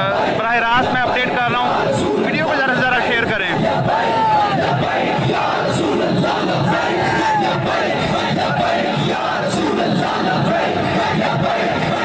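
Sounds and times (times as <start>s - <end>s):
crowd of men shouting: 0.0s - 12.0s.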